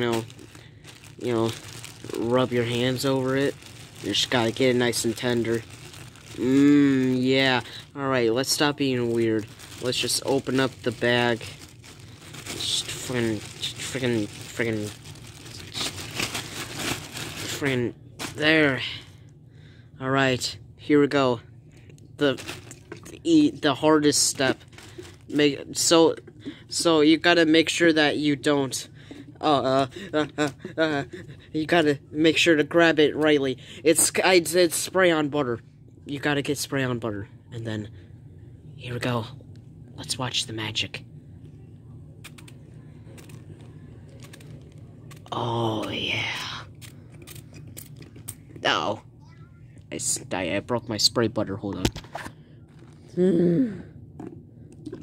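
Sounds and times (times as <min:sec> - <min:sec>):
plastic bag crinkling: 0:00.0 - 0:19.0, 0:22.2 - 0:31.0, 0:42.2 - 0:48.7, 0:52.6 - 0:53.2
low steady hum: 0:00.0 - 0:55.0.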